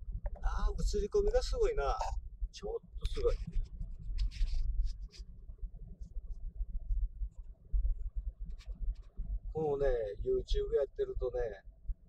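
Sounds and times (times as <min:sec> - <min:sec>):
scratchy rustles near microphone: 0:03.1 - 0:05.3, 0:08.5 - 0:09.2.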